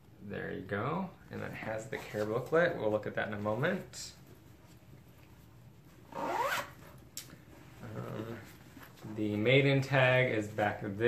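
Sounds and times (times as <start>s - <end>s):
zipper rasp rising in pitch: 6.1s - 6.8s.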